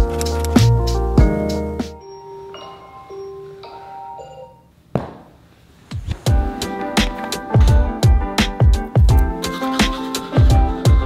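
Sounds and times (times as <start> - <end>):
music with a beat: 0.0 - 2.0, 6.2 - 11.0
sharp knock: 4.9 - 5.4.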